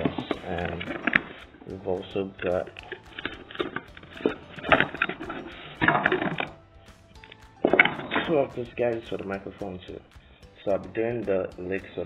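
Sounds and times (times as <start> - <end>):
faint music: 0.0 - 12.0.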